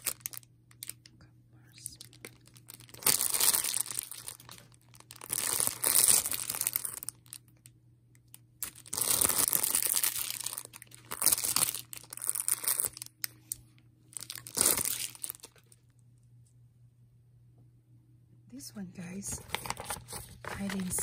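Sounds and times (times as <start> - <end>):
plastic sachets crinkling: 0.0 - 7.6, 8.2 - 15.9, 19.3 - 21.0.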